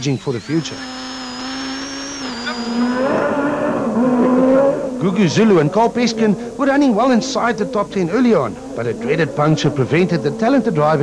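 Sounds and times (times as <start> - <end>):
thin high whine: 0.0 - 11.0
rally car engine running hard: 2.4 - 11.0.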